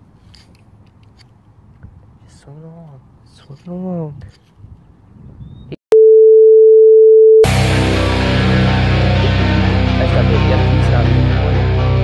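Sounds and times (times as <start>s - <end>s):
guitar music: 7.5s - 12.0s.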